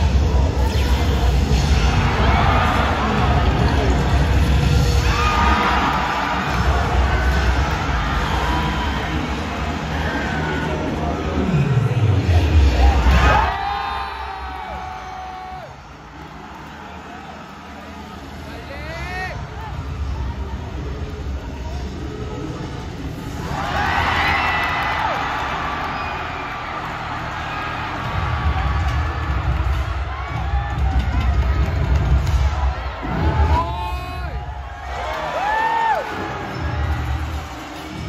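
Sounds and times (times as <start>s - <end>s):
crowd cheering: 1.6s - 11.7s, 12.3s - 20.7s, 23.3s - 38.0s.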